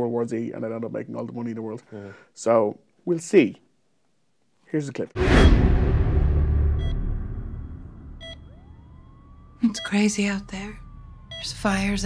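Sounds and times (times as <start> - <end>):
deep boom: 5.2 - 9.3
thin rising tone: 6.4 - 11.5
short electronic beep: 6.8 - 8.5.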